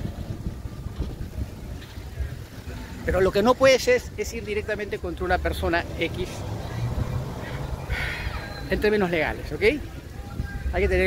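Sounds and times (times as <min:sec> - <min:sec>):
wind buffeting microphone: 0:00.0 - 0:03.4, 0:04.0 - 0:11.0
street traffic: 0:00.0 - 0:11.0.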